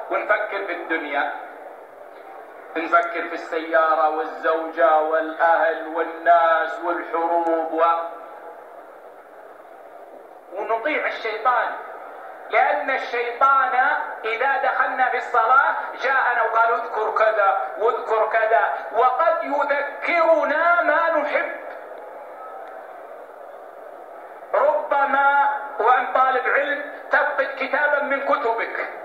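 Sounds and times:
man's voice: 0.0s - 1.4s, 2.8s - 8.2s, 10.5s - 11.8s, 12.5s - 21.7s, 24.5s - 29.0s
steady background hiss: 0.0s - 29.0s.

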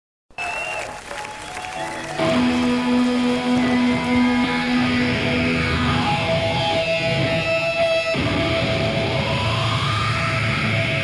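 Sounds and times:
crowd applause and cheering: 0.3s - 9.9s.

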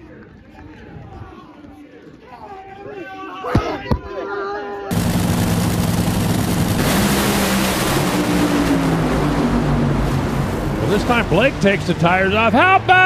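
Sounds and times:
drag racing car roaring: 4.9s - 13.0s.

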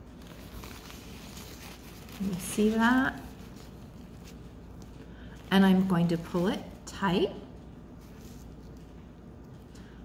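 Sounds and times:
paper napkin rustling: 0.0s - 6.8s, 7.9s - 9.7s.

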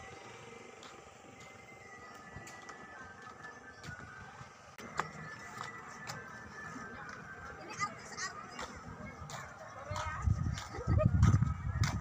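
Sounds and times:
wind buffeting microphone: 9.2s - 12.0s.

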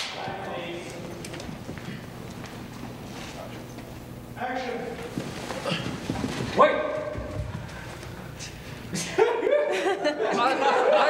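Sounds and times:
clapperboard snap echo: 0.0s - 1.5s
steady low hum: 0.0s - 11.0s
faint clicks and shuffles: 0.8s - 4.3s.

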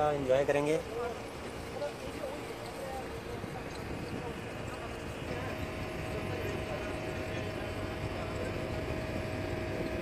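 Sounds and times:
boat engine droning: 0.0s - 10.0s
wind noise: 3.4s - 6.8s.

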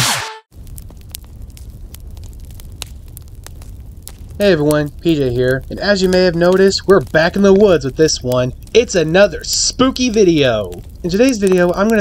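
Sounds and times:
sharp pops of fire: 0.0s - 12.0s
fire crackling: 0.4s - 12.0s.

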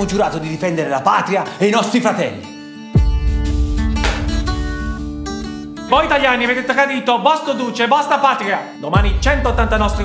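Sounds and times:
guitar strum: 3.1s - 5.8s.

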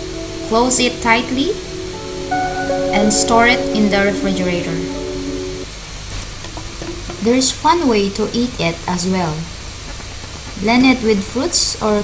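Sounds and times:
background music chord: 0.0s - 5.8s
steady hiss: 0.0s - 12.0s.

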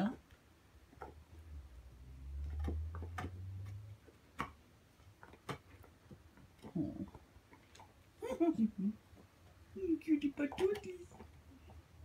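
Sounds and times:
teeth clicking on bone: 0.9s - 1.3s, 2.3s - 8.2s.

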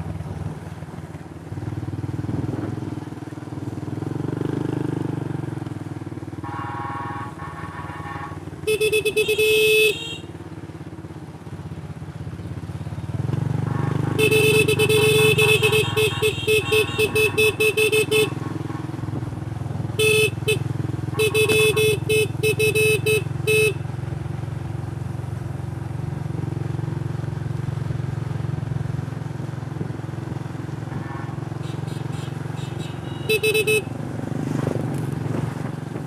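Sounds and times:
motorcycle horn short toots: 6.4s - 10.4s, 13.7s - 19.0s, 19.9s - 23.9s, 31.6s - 33.9s.

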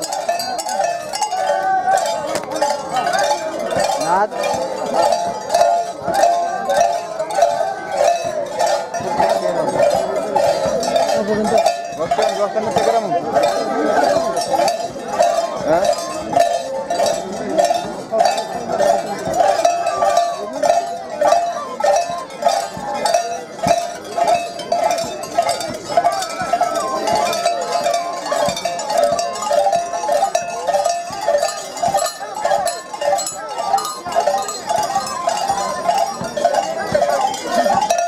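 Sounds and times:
high piercing repeating melody: 0.0s - 38.0s
large crowd noise: 0.0s - 38.0s.

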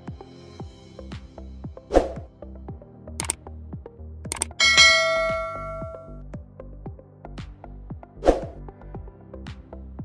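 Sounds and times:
background music: 0.0s - 10.0s
clicks: 3.2s - 3.4s, 4.3s - 6.1s
bell ringing: 4.6s - 6.2s.

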